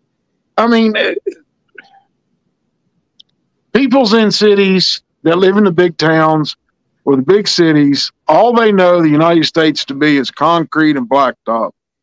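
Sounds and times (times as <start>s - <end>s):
man speaking: 0.6s - 1.4s, 3.8s - 11.7s
faint throat noises: 0.9s - 2.1s.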